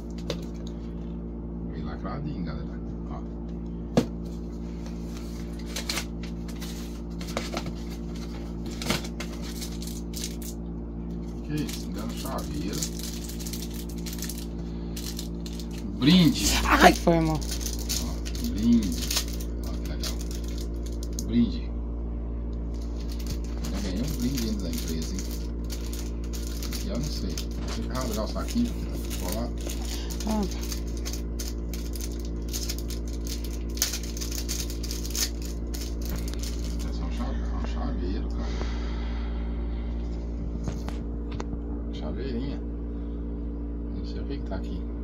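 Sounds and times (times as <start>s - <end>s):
air conditioner humming: 0.0s - 45.0s
plastic bag crinkling: 5.2s - 10.6s, 11.2s - 21.3s, 22.7s - 37.0s
small parts rustling and clicking: 11.6s - 15.8s, 16.8s - 21.2s, 22.8s - 36.9s.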